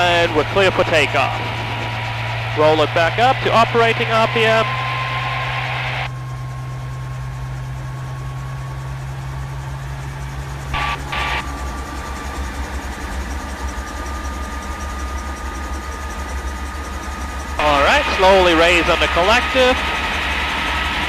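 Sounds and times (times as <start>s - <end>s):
helicopter engine and rotor: 0.0s - 21.0s.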